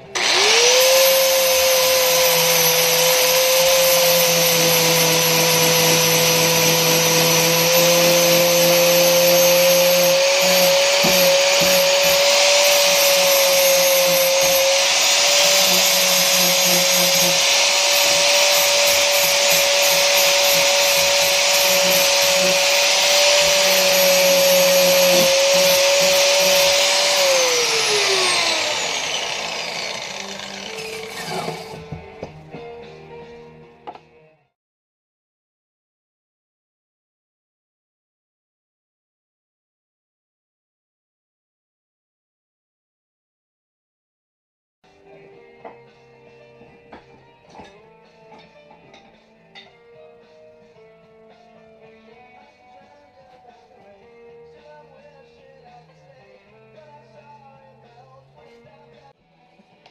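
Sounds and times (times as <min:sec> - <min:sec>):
angle grinder whining: 0:00.0 - 0:32.1.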